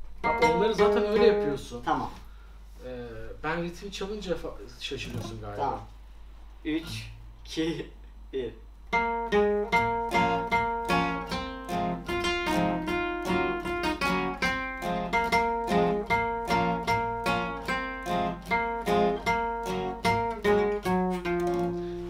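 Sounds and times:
acoustic guitars playing: 0.0s - 2.2s, 4.9s - 7.6s, 8.8s - 22.0s.

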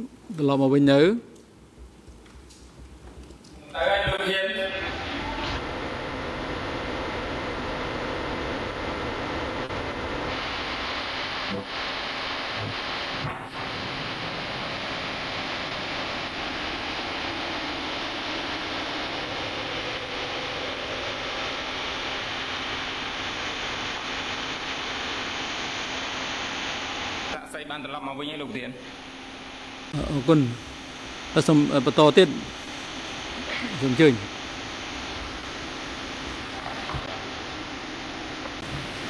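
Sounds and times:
static hiss: 0.0s - 39.0s.

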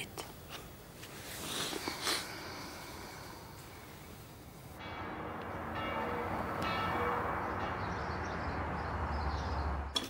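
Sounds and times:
low city rumble: 0.0s - 10.0s
distant church bells ringing: 4.8s - 10.0s.

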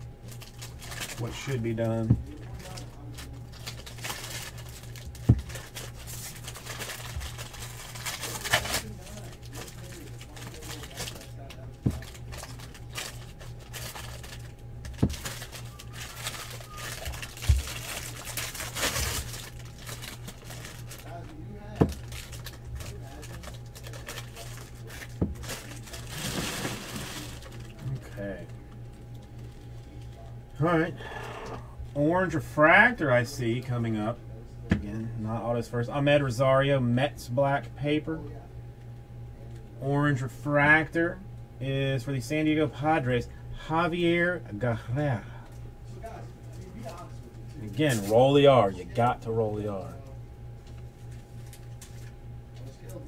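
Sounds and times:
steady low hum: 0.0s - 53.0s
cards rustling: 0.2s - 30.1s, 46.5s - 48.4s.

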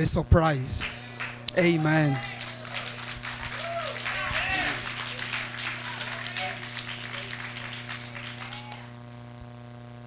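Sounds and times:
electrical hum: 0.0s - 10.0s
congregation applause: 0.8s - 9.0s.

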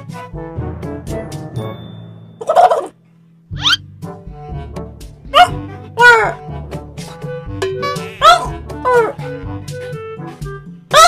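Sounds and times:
background music: 0.0s - 11.0s
man imitating gecko call: 3.6s - 3.8s.

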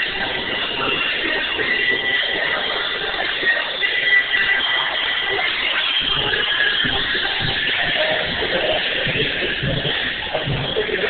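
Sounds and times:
faint wavering high tones: 0.0s - 11.0s.

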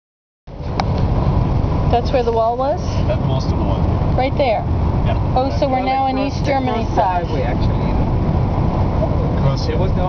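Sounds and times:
car cabin road rumble: 0.5s - 10.0s.

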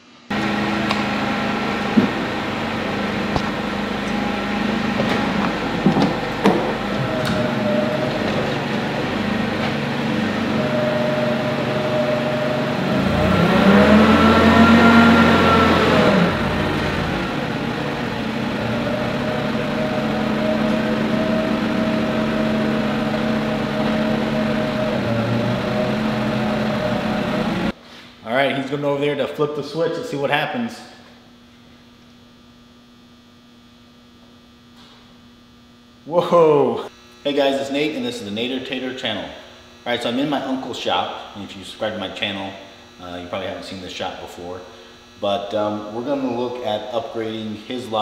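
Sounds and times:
forklift engine running: 0.3s - 27.8s.

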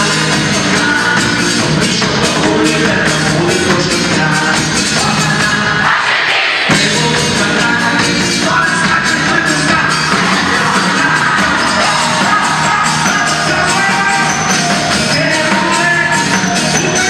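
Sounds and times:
live pop-rock band: 0.0s - 17.0s.

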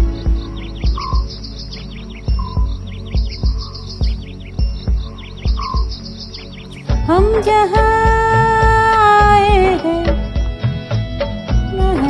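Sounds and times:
low thumping beat: 0.0s - 12.0s.

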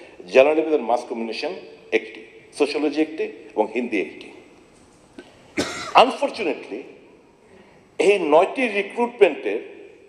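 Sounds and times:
man speaking: 0.2s - 4.5s, 5.9s - 7.1s, 8.0s - 9.8s
man coughing: 5.6s - 6.1s.

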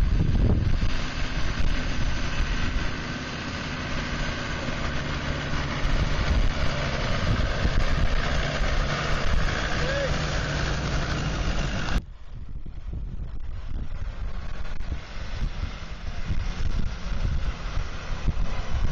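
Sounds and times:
vehicle engine running at low revs: 0.0s - 18.9s.

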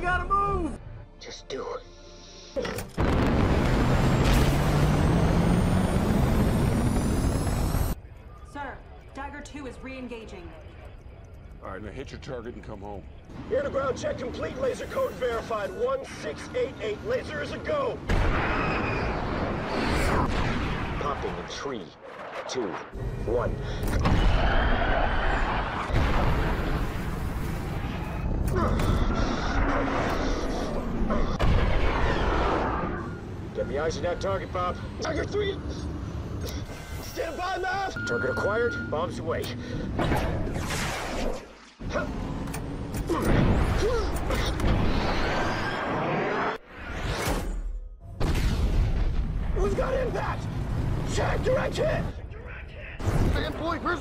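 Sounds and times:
jet engines at full power: 3.0s - 8.0s.

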